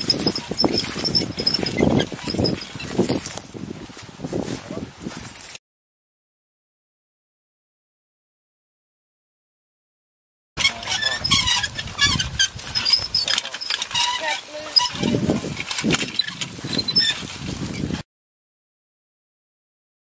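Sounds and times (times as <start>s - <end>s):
implement clicking and knocking on soil: 0.0s - 3.5s, 10.6s - 17.9s
people's voices: 13.1s - 15.6s.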